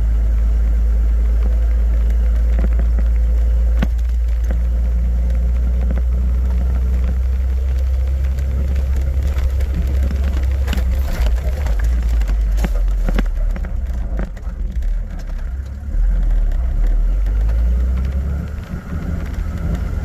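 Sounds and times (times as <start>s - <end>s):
vehicle rumbling on sand track: 0.0s - 20.0s.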